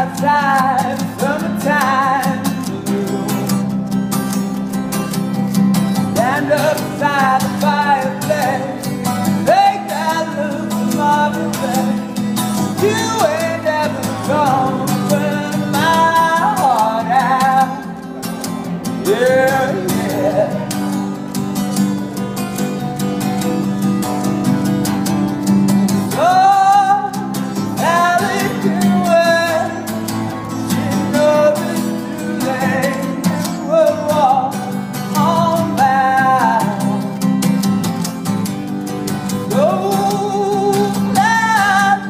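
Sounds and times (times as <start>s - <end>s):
man singing: 0.0s - 3.8s, 6.0s - 21.2s, 26.0s - 37.3s, 39.2s - 42.0s
strummed acoustic guitar: 0.0s - 42.0s.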